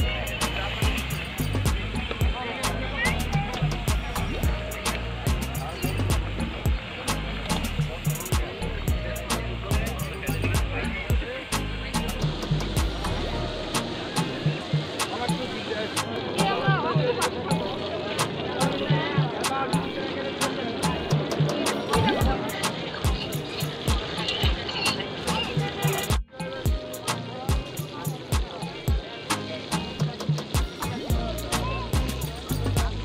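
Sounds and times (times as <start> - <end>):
music with beat and voices: 0.0 - 33.0.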